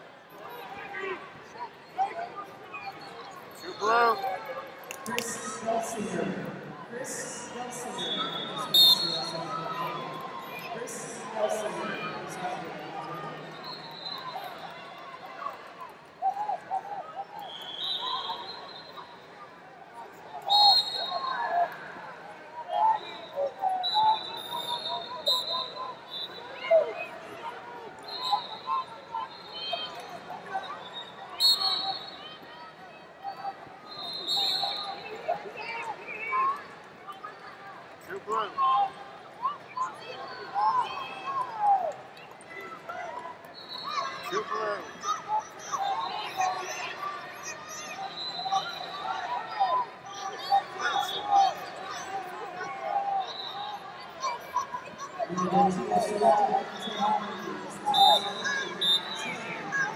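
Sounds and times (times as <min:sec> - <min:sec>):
spectators shouting in an arena: 0:00.0 - 0:59.9.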